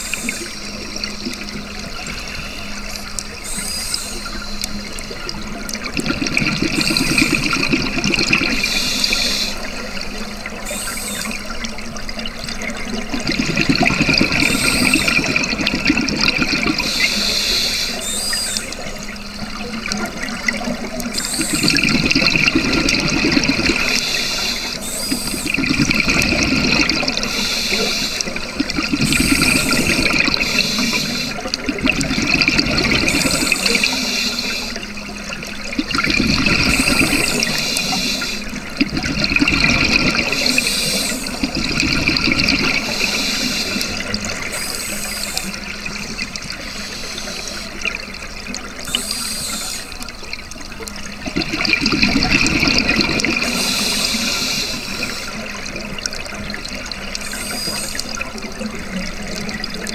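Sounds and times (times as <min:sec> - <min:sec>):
exhaled bubbles rushing underwater: 0:00.0 - 0:59.9
diver breathing through regulator: 0:27.2 - 0:28.4, 0:29.1 - 0:31.4, 0:48.9 - 0:50.0, 0:53.4 - 0:55.4.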